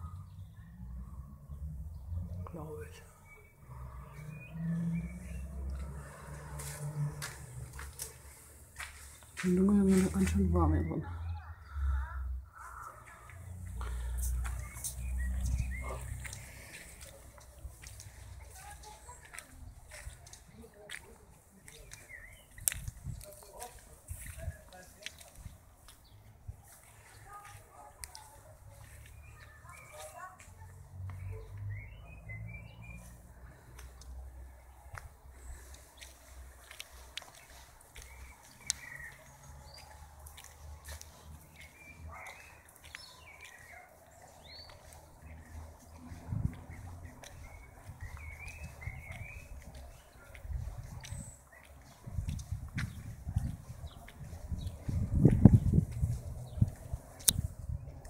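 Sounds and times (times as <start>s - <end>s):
low wind rumble: 52.0s - 58.0s.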